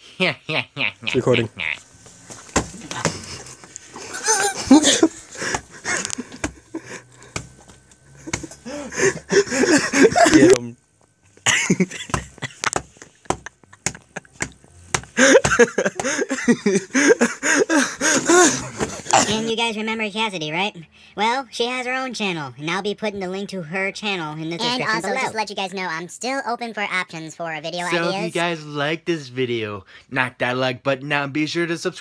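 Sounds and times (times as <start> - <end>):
people laughing: 0.2 - 1.8, 2.7 - 7.3, 8.0 - 10.7, 11.5 - 19.4
people talking indistinctly: 1.0 - 1.8, 18.7 - 30.8.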